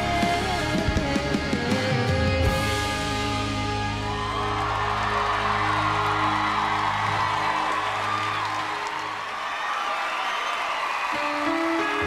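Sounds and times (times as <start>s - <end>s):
live band music: 0.0s - 7.2s, 11.2s - 12.0s
crowd cheering: 3.1s - 12.0s.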